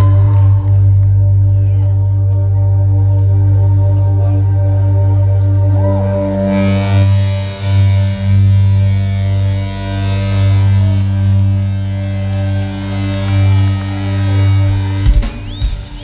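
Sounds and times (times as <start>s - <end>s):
heavy bass drone: 0.0s - 15.6s
distorted guitars low chords: 0.0s - 16.0s.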